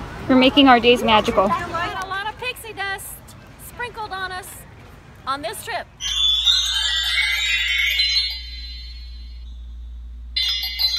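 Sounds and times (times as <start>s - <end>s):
steady low hum: 5.9s - 10.9s
shimmering chime sparkle: 6.0s - 9.5s, 10.4s - 10.9s.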